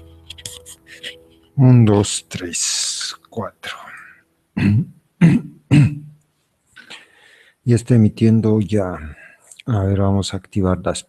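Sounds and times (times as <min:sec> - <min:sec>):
man clearing his throat: 0:04.6 - 0:06.1.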